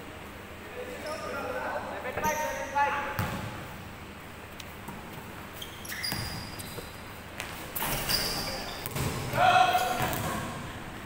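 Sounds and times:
players calling out: 0:08.4 - 0:10.5.

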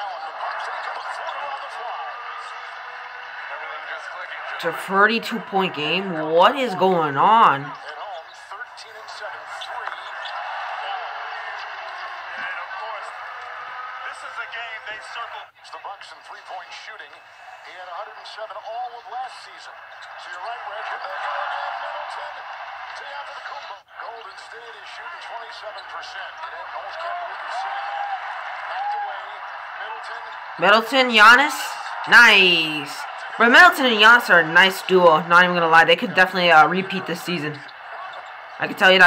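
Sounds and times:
arena crowd noise: 0:00.0 - 0:39.0
commentators talking: 0:00.9 - 0:07.8, 0:29.2 - 0:39.0.

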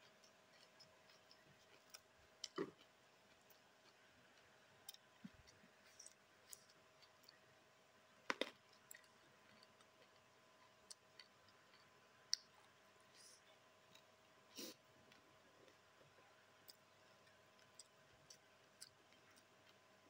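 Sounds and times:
mouth smacks while chewing: 0:00.1 - 0:07.4.

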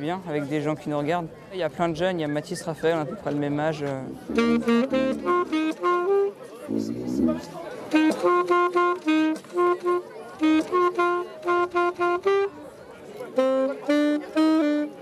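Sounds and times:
saxophone playing tune: 0:04.0 - 0:15.0.

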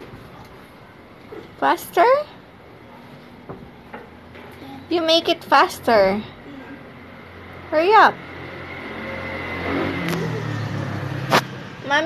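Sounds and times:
motor vehicle passing by: 0:04.6 - 0:12.0.

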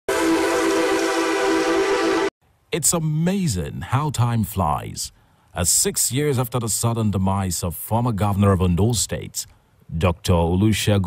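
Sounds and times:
sustained horn-like chord: 0:00.1 - 0:02.3.

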